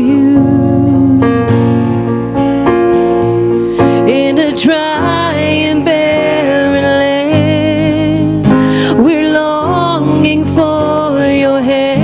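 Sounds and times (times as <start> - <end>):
guitar and keyboard chords: 0.0 - 12.0.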